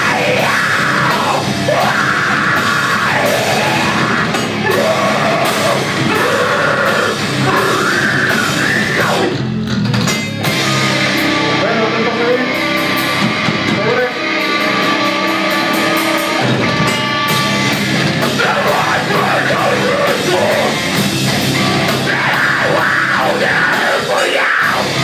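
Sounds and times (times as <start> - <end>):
vocalist singing: 0.0 - 9.4, 18.2 - 21.0, 21.8 - 25.0
bass guitar: 0.0 - 25.0
distorted guitars: 0.0 - 25.0
drum kit: 0.0 - 25.0.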